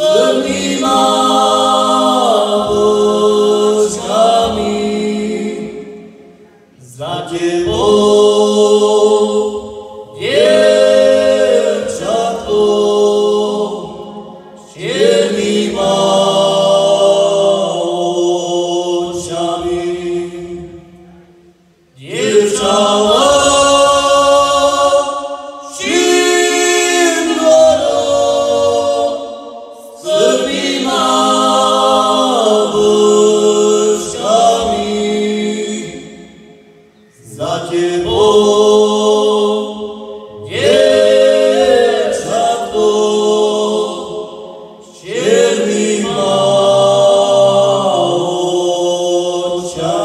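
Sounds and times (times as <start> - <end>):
men singing folk song in harmony: 0.0 - 6.0, 6.8 - 20.7, 22.0 - 36.4, 37.2 - 50.0.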